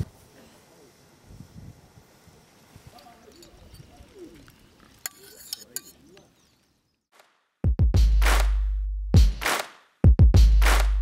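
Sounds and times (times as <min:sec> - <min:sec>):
soft cooing bird calls: 0:03.9 - 0:04.5.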